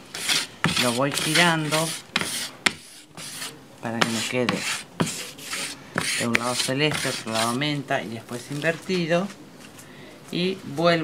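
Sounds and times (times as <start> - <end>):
wood block scraping on plank: 0.1 - 7.6.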